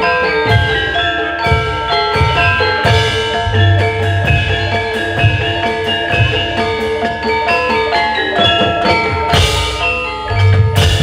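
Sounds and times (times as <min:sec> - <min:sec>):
bronze metallophones ringing: 0:00.0 - 0:11.0.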